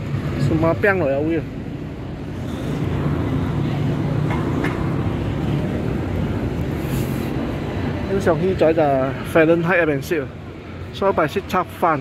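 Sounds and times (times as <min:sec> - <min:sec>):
city street traffic rumble: 0:00.0 - 0:12.0
short hiss: 0:06.8 - 0:07.3.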